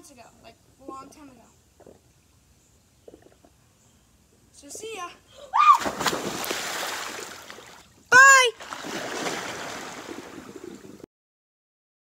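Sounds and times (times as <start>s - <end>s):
pool water splashing: 5.6s - 11.1s
person yelling: 8.1s - 8.6s.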